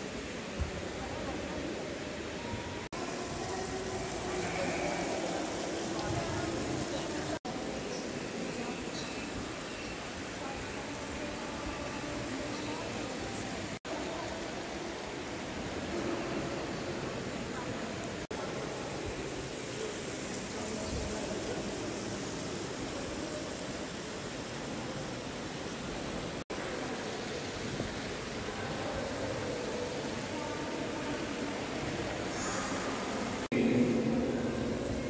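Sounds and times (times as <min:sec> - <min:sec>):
faint murmuring voices: 0:00.0 - 0:35.0
rushing hall noise: 0:00.0 - 0:35.0.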